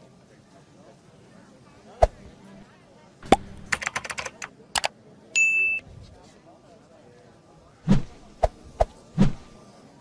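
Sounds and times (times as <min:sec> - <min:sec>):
mouse clicks: 0:03.2 - 0:04.9.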